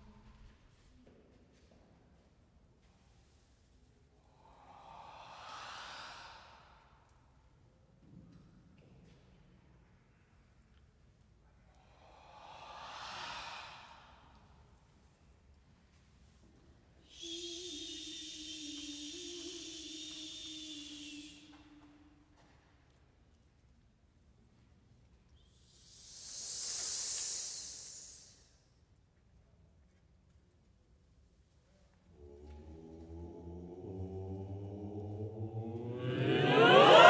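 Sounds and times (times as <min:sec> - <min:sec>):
high steady hiss: 0:03.0 - 0:06.8, 0:11.7 - 0:15.4, 0:16.0 - 0:21.9, 0:25.3 - 0:28.8
choir breathing out: 0:04.2 - 0:07.2, 0:11.7 - 0:15.0, 0:17.0 - 0:22.2, 0:25.6 - 0:28.5, 0:32.1 - 0:37.0.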